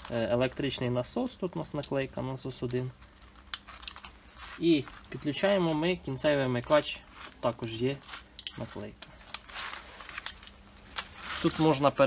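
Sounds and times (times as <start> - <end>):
cable rustling: 0.0 - 12.0.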